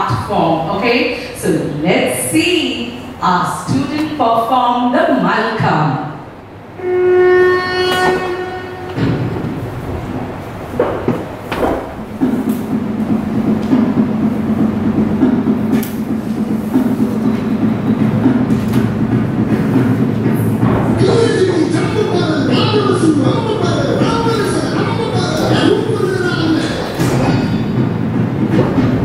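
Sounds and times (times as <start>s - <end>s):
long horn-like note: 6.8s - 10.2s
dense rumbling sound: 8.0s - 29.0s.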